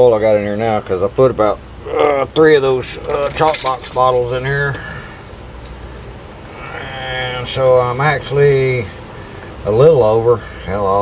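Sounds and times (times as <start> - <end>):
crickets chirping: 0.0 - 11.0
low steady hum: 0.0 - 11.0.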